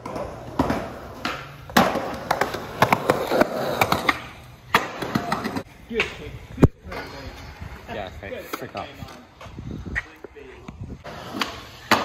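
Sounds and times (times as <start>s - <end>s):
skateboard wheels knocking: 0.0s - 5.7s, 11.1s - 12.0s
skateboard clacking on concrete: 0.0s - 6.2s, 11.1s - 12.0s.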